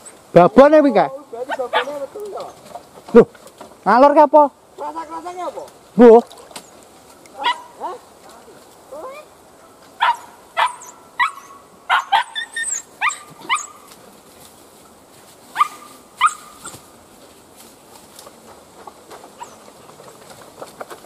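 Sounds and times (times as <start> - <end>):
dog barking: 1.5 - 2.0, 7.4 - 8.0, 10.0 - 13.8, 15.6 - 16.5.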